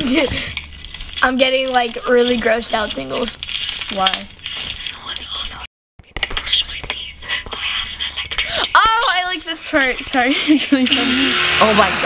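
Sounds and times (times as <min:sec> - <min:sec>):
person whispering: 0:04.8 - 0:08.6.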